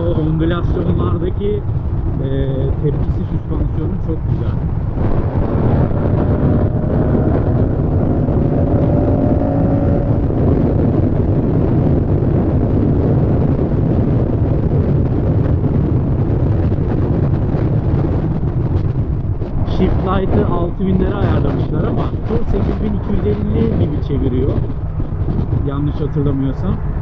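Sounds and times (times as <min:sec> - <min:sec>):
motorcycle engine at speed: 0:00.0 - 0:27.0
wind rush on microphone: 0:00.0 - 0:27.0.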